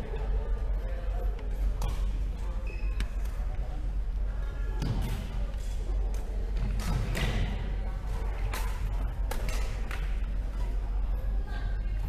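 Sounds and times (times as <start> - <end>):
low hall hum: 0.0 - 12.0
shoe squeaks: 2.6 - 3.0.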